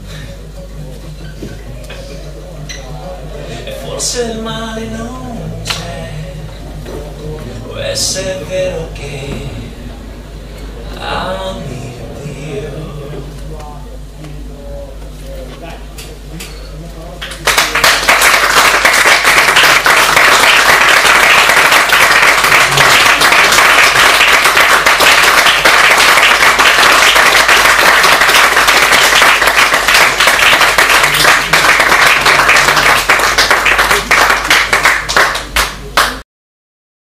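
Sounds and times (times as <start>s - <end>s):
audience applause: 17.2s - 36.2s.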